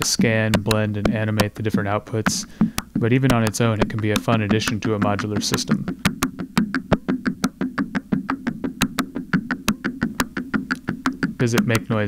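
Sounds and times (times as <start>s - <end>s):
sequenced synth clicks and knocks: 0.0s - 12.0s.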